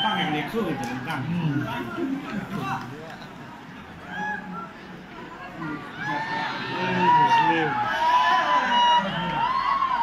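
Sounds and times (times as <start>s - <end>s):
distant shouts and calls: 3.9s - 10.0s.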